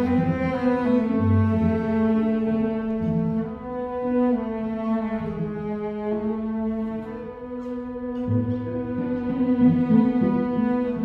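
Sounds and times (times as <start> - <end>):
bowed cello long notes: 0.0 - 11.0.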